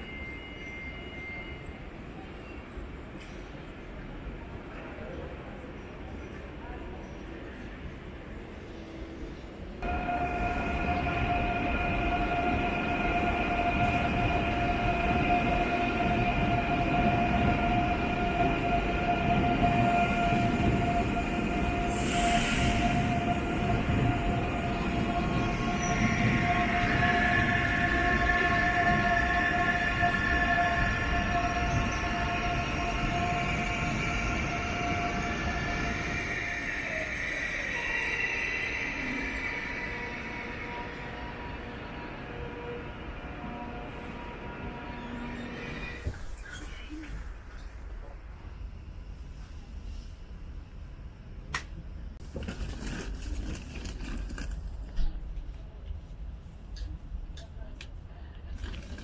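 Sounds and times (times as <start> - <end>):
low train rumble: 0.0 - 59.0
electric train whine: 9.8 - 49.1.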